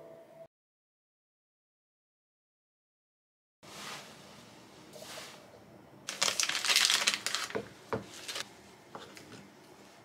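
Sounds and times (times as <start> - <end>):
plastic wrapping crinkling: 6.1 - 8.5.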